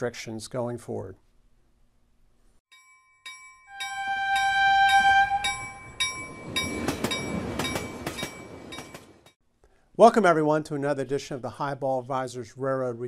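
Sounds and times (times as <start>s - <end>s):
train air horn chord: 3.7s - 6.0s
train rumbling: 3.8s - 9.4s
wheels clacking over rail joints: 5.5s - 9.4s.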